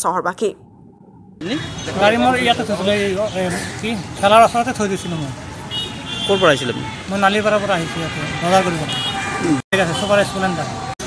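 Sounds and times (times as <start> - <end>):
street traffic: 1.4 - 11.0
high-pitched vehicle horn: 5.7 - 10.3.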